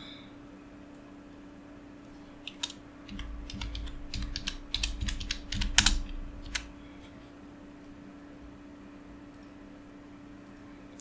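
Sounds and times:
computer keyboard typing: 2.4 - 6.7.

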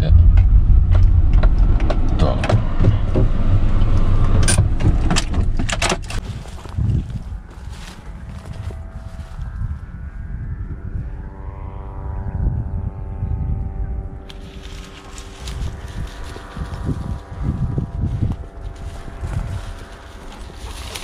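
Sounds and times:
distant engine drone: 0.0 - 21.0
wind buffeting microphone: 0.0 - 21.0
footsteps through dry grass: 6.2 - 10.4, 14.2 - 21.0.

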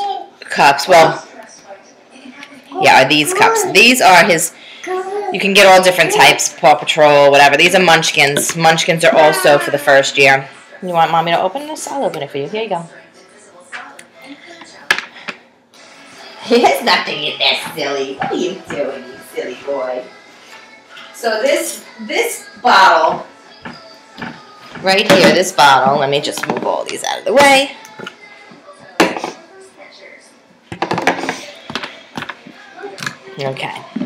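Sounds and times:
plastic cup knocking on table: 30.7 - 32.4.

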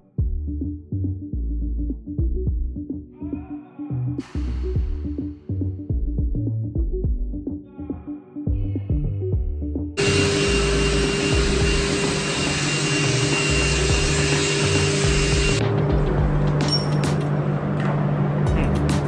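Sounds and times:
machine rushing noise with hum: 10.0 - 16.6.

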